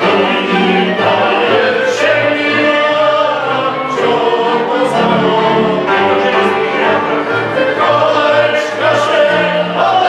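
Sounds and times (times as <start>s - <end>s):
folk string band playing: 0.0s - 10.0s
voices singing together: 0.0s - 10.0s.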